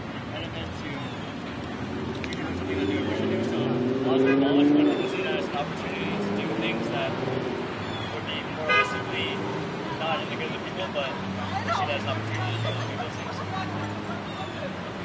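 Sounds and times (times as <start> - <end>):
city street traffic: 0.0 - 15.0
distant voices: 0.0 - 15.0
short sharp honk: 8.6 - 9.1.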